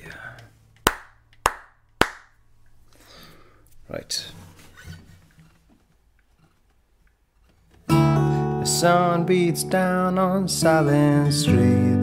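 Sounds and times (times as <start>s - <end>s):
sharp hand claps: 0.8s - 2.4s.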